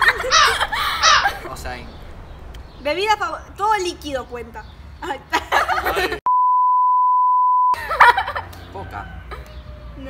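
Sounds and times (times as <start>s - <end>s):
high-pitched censor bleep: 6.3s - 7.8s.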